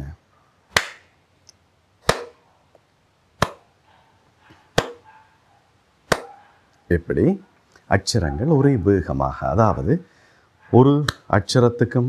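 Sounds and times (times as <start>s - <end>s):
hand claps: 0.7s - 1.1s, 3.4s - 3.6s, 6.1s - 6.3s.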